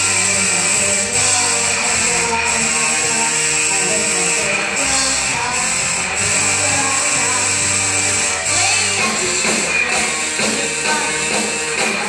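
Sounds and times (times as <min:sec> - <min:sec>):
drum kit: 0:00.0 - 0:12.0
electric guitar: 0:00.0 - 0:12.0
live rock band playing: 0:00.0 - 0:12.0.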